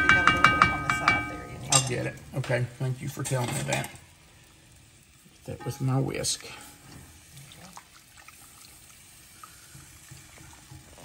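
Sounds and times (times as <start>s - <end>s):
milk pouring into pan: 2.0s - 11.0s.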